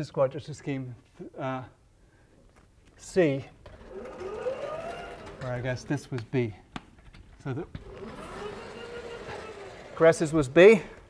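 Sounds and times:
faint hum rising and falling: 3.1 - 6.6, 7.3 - 11.0
chalkboard panel rolling rumble: 3.7 - 6.3, 7.5 - 10.8.

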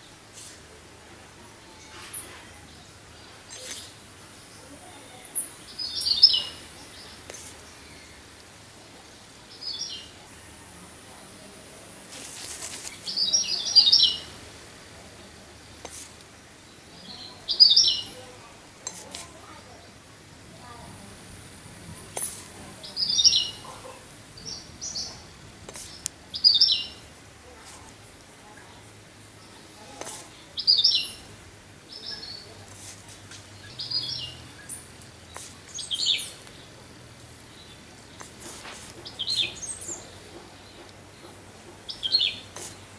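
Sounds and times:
bird chirping: 1.8 - 8.3, 12.8 - 14.3, 16.8 - 18.3, 22.1 - 27.0, 30.4 - 31.3, 33.6 - 36.8, 37.4 - 42.8.

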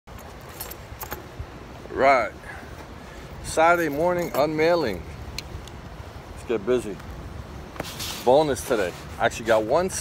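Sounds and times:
light high clinks and jingles: 0.1 - 1.8, 2.4 - 5.9
outdoor background noise: 0.1 - 10.0.

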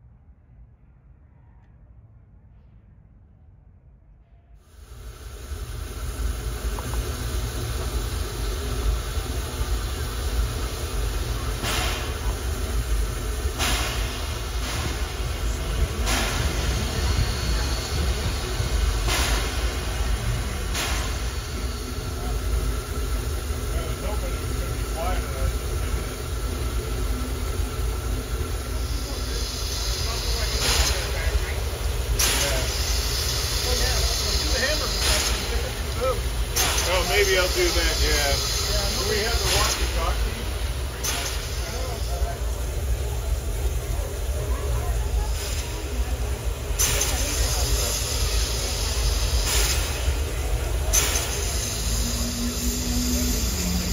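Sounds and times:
hiss of steam: 4.6 - 53.9
steam locomotive exhaust chuffs: 4.6 - 53.9.

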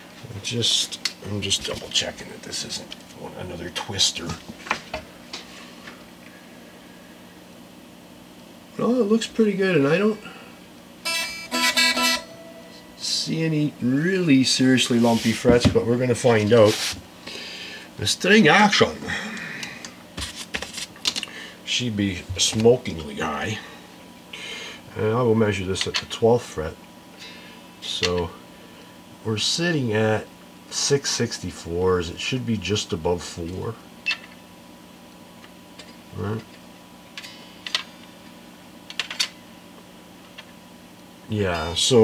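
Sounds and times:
high metallic ring: 11.0 - 14.1
soft rubbing scrape: 14.8 - 15.5, 16.4 - 17.0.

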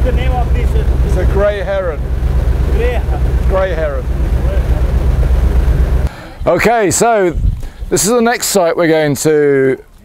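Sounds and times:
boat engine rumble: 0.0 - 8.2.

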